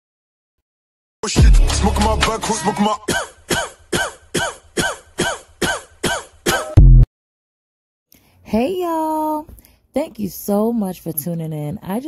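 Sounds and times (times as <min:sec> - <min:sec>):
loud low bass hit: 0:06.8 - 0:07.1.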